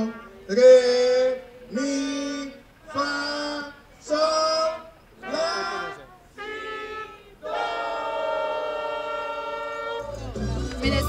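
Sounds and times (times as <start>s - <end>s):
trumpet holding long note: 5.2s - 11.0s.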